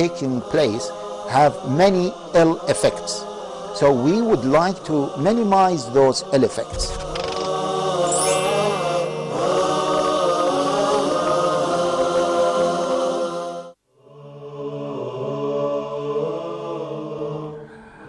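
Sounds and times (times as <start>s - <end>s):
chanted vocal jingle: 0.0s - 18.0s
quiet chanting: 0.0s - 18.0s.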